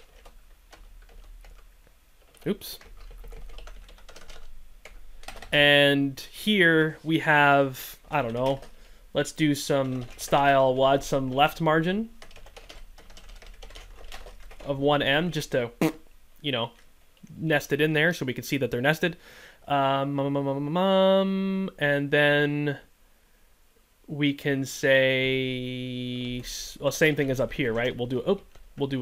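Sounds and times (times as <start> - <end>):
computer keyboard keystrokes: 0.0 - 5.5, 12.2 - 14.7.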